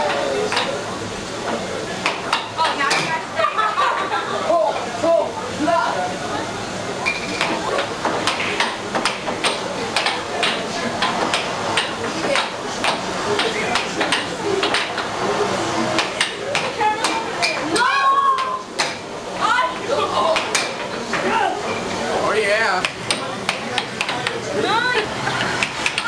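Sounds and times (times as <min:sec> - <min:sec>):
air hockey puck clacking: 0:07.4 - 0:15.1, 0:16.0 - 0:19.0, 0:20.3 - 0:21.3, 0:22.8 - 0:24.4, 0:25.4 - 0:26.0.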